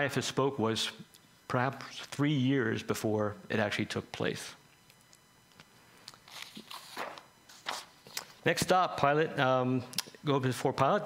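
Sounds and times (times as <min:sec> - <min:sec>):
papers rustling: 0:06.0 - 0:08.4.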